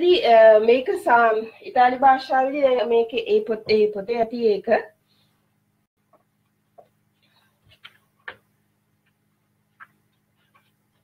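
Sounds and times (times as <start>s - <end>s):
marker tapping on whiteboard: 7.7s - 8.5s.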